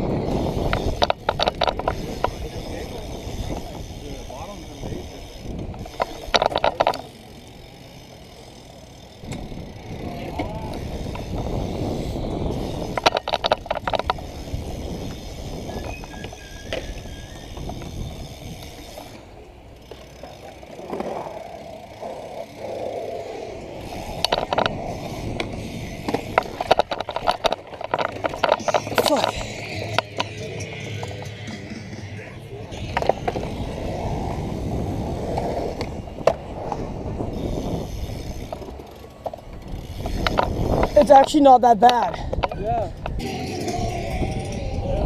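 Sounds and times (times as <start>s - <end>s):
bike rapid clicking: 0.0s - 45.0s
bike tyres rumbling on concrete: 0.0s - 45.0s.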